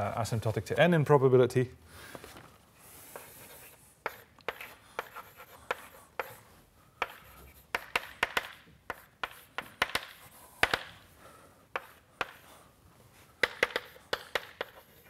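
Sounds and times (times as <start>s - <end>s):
chalk tapping and scraping on board: 3.0s - 11.0s, 11.7s - 12.6s, 13.4s - 15.0s.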